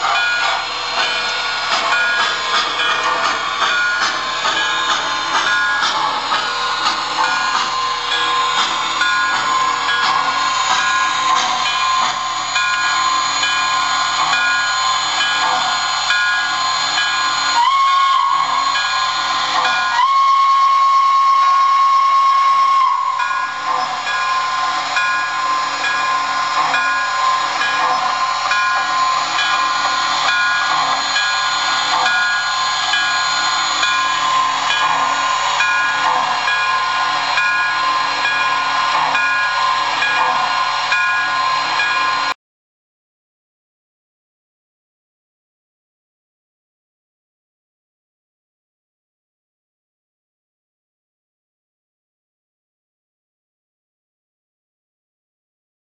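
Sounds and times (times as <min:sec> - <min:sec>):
steam hiss: 0:00.0 - 0:42.4
steam whistle blasts: 0:10.4 - 0:42.4.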